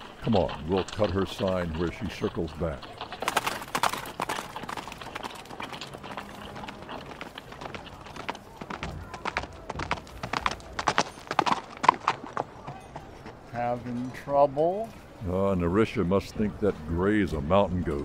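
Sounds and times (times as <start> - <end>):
horse hooves clip-clopping: 0.0 - 15.2.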